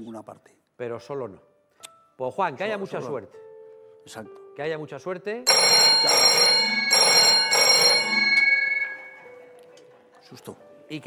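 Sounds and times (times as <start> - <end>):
telephone bell ringing: 5.5 - 9.4.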